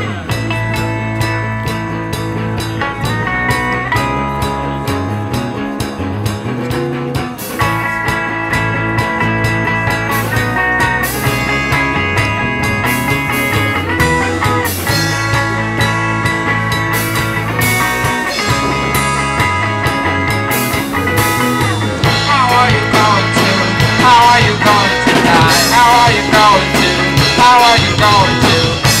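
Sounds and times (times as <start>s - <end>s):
bright high guitar line: 0.0s - 29.0s
electric bass guitar: 0.0s - 29.0s
electric guitar: 0.0s - 29.0s.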